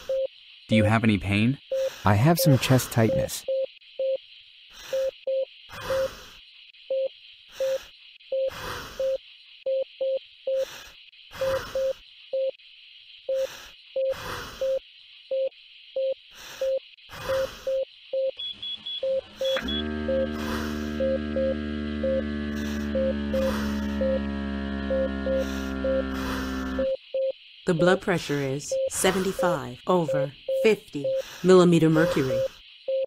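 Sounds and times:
patient monitor beeping: 0:00.0 - 0:04.2, 0:04.9 - 0:06.1, 0:06.9 - 0:10.7, 0:11.4 - 0:12.6, 0:13.3 - 0:33.0
breathing sounds: 0:01.7 - 0:03.0, 0:04.7 - 0:06.6, 0:07.4 - 0:09.3, 0:10.5 - 0:12.1, 0:13.3 - 0:14.8, 0:16.2 - 0:17.8, 0:19.2 - 0:27.0, 0:31.0 - 0:31.6
motor hum: 0:18.4 - 0:27.0.

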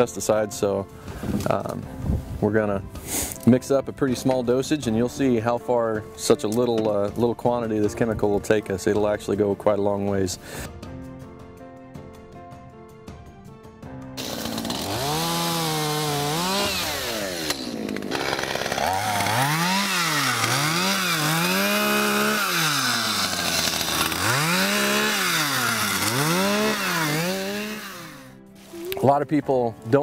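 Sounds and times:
chainsaw revving: 0:14.2 - 0:28.4.

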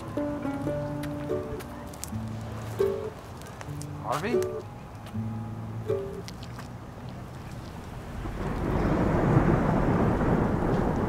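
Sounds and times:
soft held music notes: 0:00.0 - 0:07.7
heavy rain falling: 0:07.3 - 0:11.0
low thunder rumble: 0:07.9 - 0:11.0.

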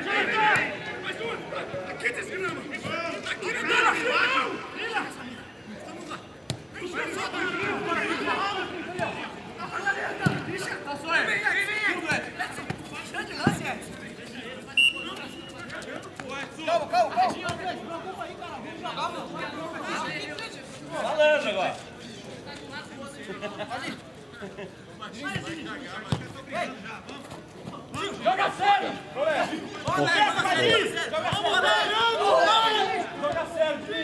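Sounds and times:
players shouting: 0:00.0 - 0:13.9, 0:27.7 - 0:34.0.

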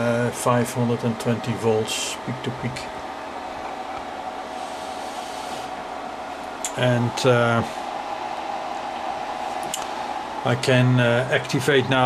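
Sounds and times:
electronics fan whir: 0:00.0 - 0:12.0.

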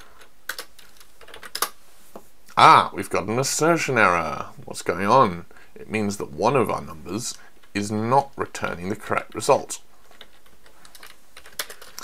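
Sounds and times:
typing on keyboard: 0:10.1 - 0:12.0.

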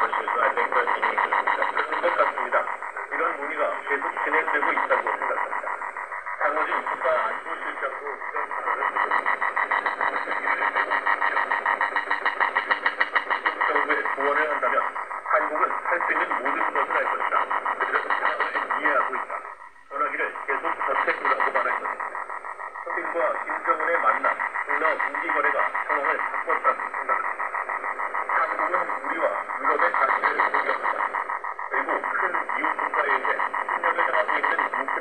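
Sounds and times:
faint radio speech: 0:00.0 - 0:35.0.

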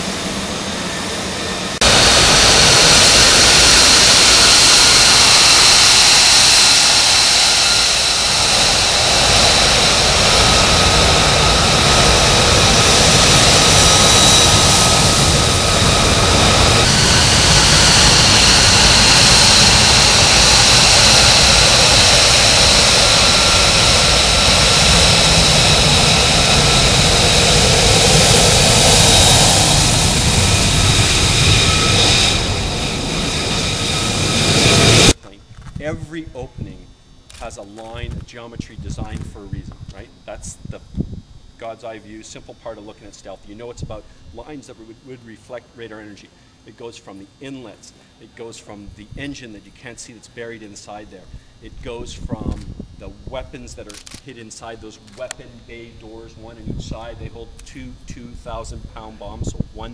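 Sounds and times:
jet engine noise with whine: 0:00.0 - 0:59.9.

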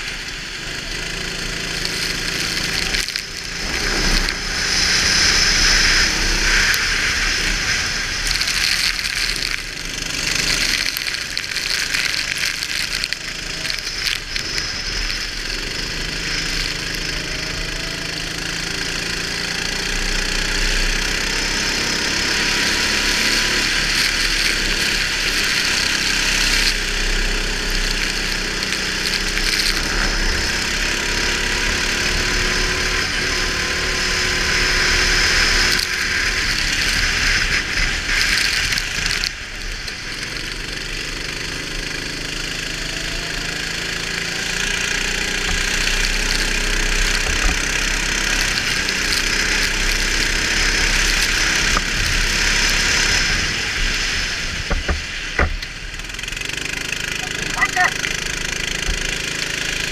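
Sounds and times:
go-kart engine: 0:00.0 - 0:59.9
wind and spray hiss: 0:00.0 - 0:59.9.

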